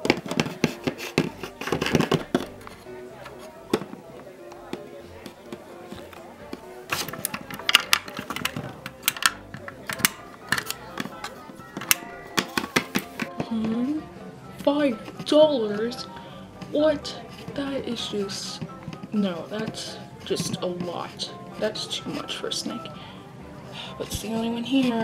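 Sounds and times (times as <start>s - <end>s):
plastic toy figures tapping on table: 0.0s - 2.6s, 6.9s - 13.5s
background music: 0.0s - 25.0s.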